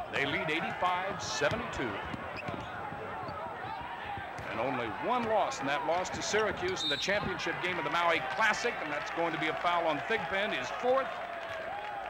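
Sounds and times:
murmur of crowd voices: 0.0 - 11.3.

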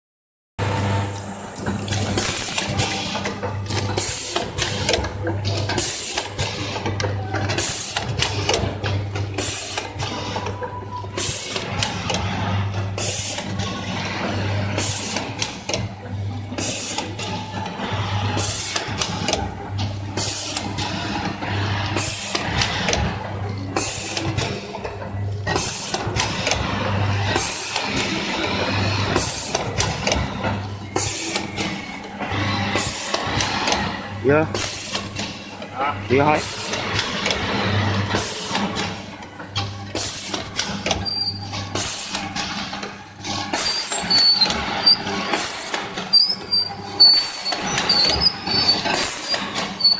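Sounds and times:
packing machine hiss: 9.4 - 9.9, 11.2 - 11.8, 13.0 - 13.5, 14.8 - 15.3, 16.6 - 17.0, 18.2 - 18.8, 20.2 - 20.7, 23.8 - 24.2, 27.4 - 28.0, 31.0 - 31.5, 32.6 - 33.5, 34.5 - 35.0, 36.4 - 38.7, 41.8 - 42.2, 43.5 - 49.8.

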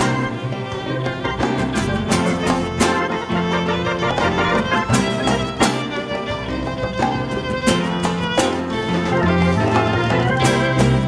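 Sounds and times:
drum kit beat: 0.0 - 11.0
strummed guitars: 0.0 - 11.0
violin melody: 0.0 - 11.0.

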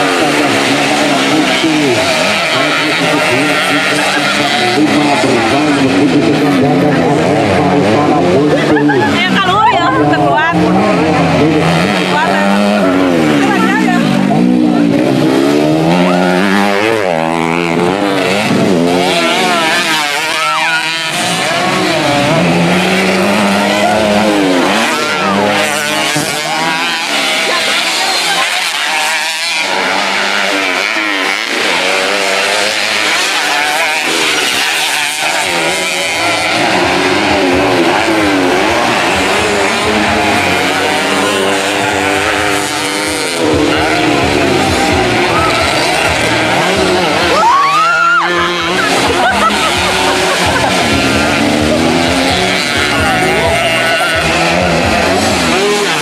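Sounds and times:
motorcycle engines revving: 0.0 - 56.0.

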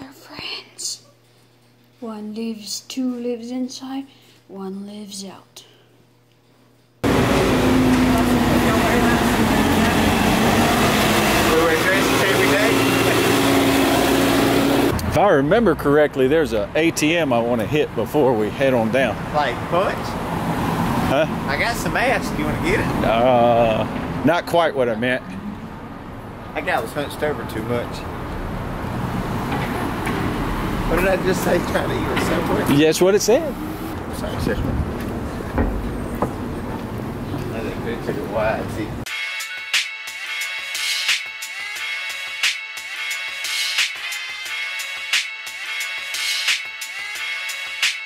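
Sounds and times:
low engine-like hum: 7.0 - 18.6
cars driving by: 7.0 - 39.0.

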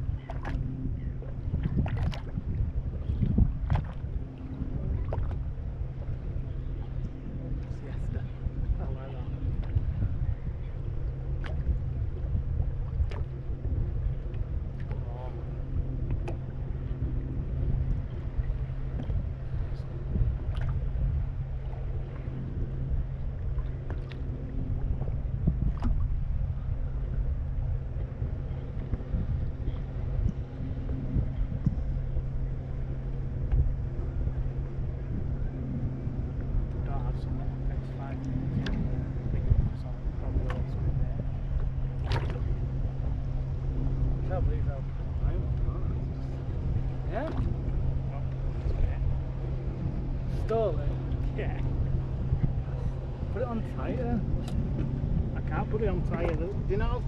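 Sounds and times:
low rumble and hum: 0.0 - 57.0
water slapping against hull: 0.0 - 57.0.

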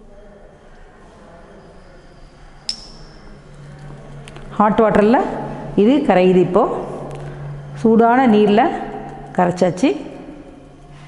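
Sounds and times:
high glass ring: 2.6 - 3.4.

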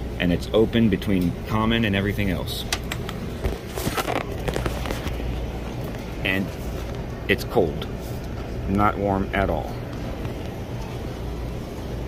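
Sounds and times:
fans humming: 0.0 - 12.0.

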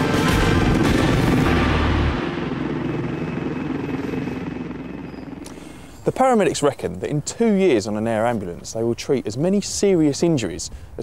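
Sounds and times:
helicopter rotor and turbine: 0.0 - 6.9.

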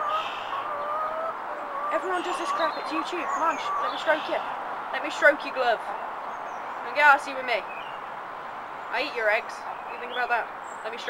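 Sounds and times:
hen calling: 0.0 - 6.0.

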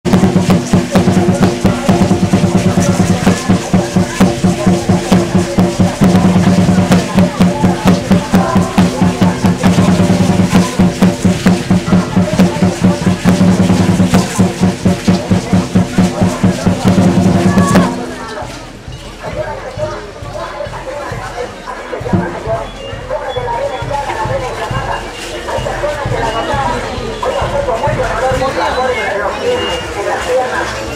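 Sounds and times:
drum beating fast rhythm: 0.0 - 30.2.

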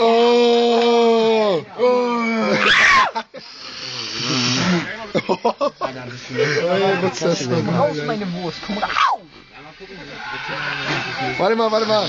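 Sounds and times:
steady hiss: 8.1 - 12.0.

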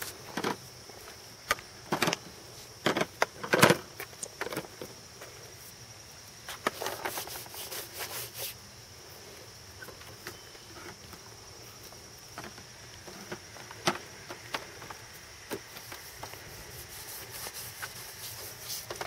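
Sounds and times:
high insect drone: 0.0 - 19.0.

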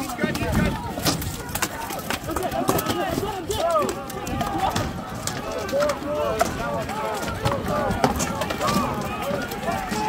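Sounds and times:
many voices shouting: 0.0 - 10.0.

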